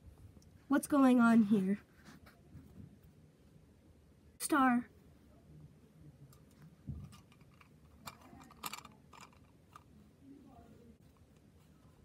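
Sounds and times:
toy figures clicking and rustling: 0:06.4 - 0:10.1.

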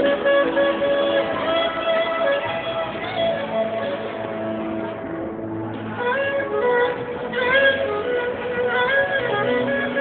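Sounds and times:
smooth jazz band: 0:05.7 - 0:10.0.

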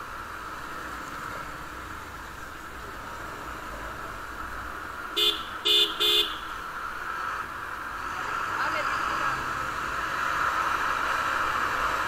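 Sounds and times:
motorcycle hum: 0:00.0 - 0:12.0
vehicle horn toots: 0:05.2 - 0:06.5.

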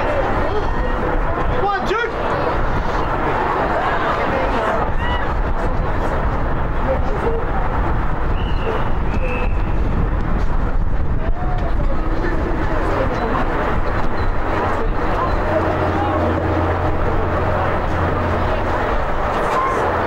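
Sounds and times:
distant crowd shouting: 0:00.0 - 0:06.3, 0:08.3 - 0:09.8, 0:11.2 - 0:20.0
wind rumble on microphone: 0:00.0 - 0:20.0.

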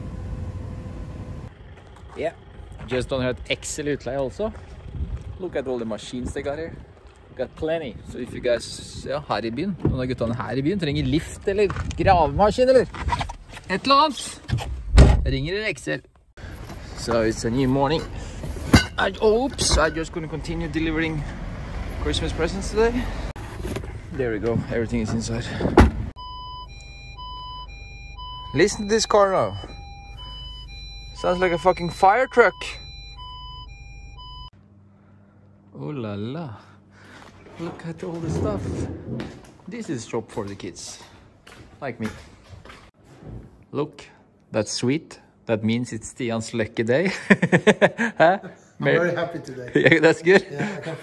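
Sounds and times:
street background: 0:00.0 - 0:43.1, 0:46.4 - 0:51.0
two-tone electronic warning beeps: 0:26.2 - 0:34.5.

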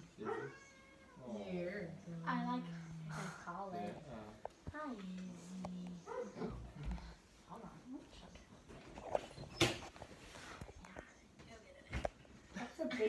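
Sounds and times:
dog making quiet vocal sounds: 0:05.3 - 0:07.2.

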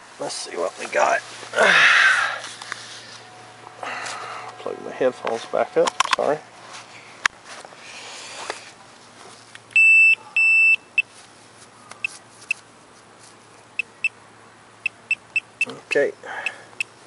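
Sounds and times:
pinpointer beeping: 0:09.7 - 0:11.1, 0:14.8 - 0:15.8.

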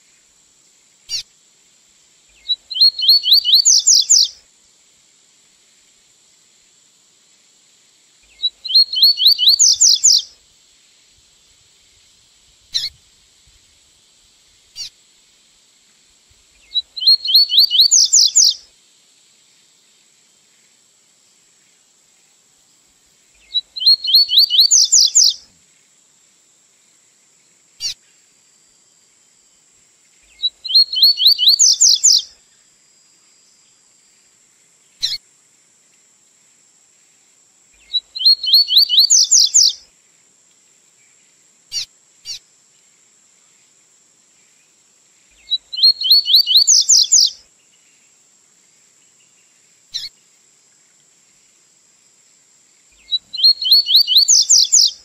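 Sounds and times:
bird song rising phrases: 0:02.4 - 0:04.3, 0:08.4 - 0:10.2, 0:16.8 - 0:18.6, 0:23.5 - 0:25.4, 0:30.4 - 0:32.2, 0:38.1 - 0:39.8, 0:45.5 - 0:47.3, 0:53.1 - 0:55.0
short bird chirps: 0:02.4 - 0:04.4, 0:08.3 - 0:10.3, 0:12.7 - 0:13.0, 0:16.6 - 0:18.6, 0:23.4 - 0:25.4, 0:30.3 - 0:32.3, 0:35.0 - 0:35.2, 0:37.8 - 0:39.8, 0:41.7 - 0:42.4, 0:45.4 - 0:47.4, 0:49.9 - 0:50.1, 0:53.0 - 0:55.0.

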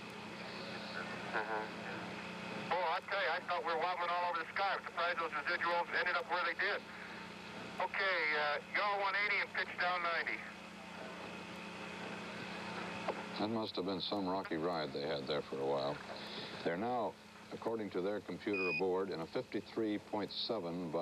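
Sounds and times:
radio transmission hiss and hum: 0:00.0 - 0:21.0
voices over radio link: 0:00.3 - 0:07.0, 0:07.8 - 0:10.6.

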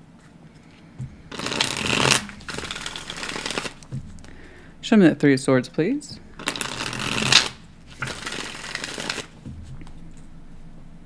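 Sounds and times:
cards shuffled by hand: 0:01.3 - 0:04.4, 0:06.2 - 0:10.2.

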